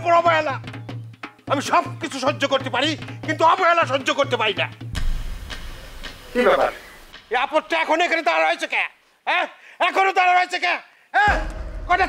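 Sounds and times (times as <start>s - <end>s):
low boom: 5.0s - 6.4s, 11.3s - 12.0s.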